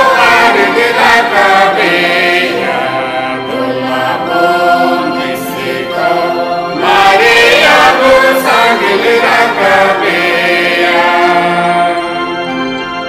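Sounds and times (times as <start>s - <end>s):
voices singing long held notes: 0.0s - 13.0s.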